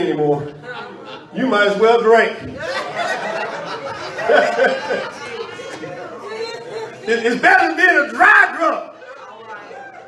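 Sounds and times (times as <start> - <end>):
murmured voices of congregation: 0.0 - 10.0.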